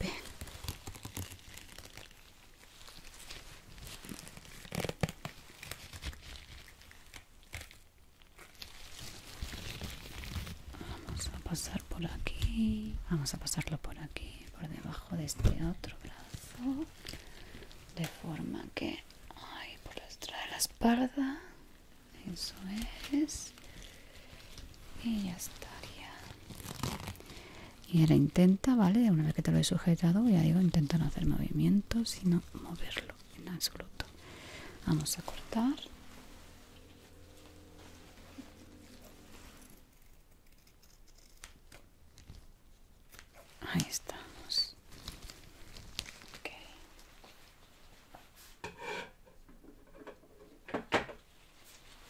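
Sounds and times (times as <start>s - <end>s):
soft whispers: 0.0s - 6.9s, 8.6s - 41.3s, 43.4s - 48.5s
elastic bandage rustling: 0.0s - 12.9s, 15.2s - 19.3s, 21.5s - 28.3s, 29.5s - 48.6s, 51.2s - 52.0s.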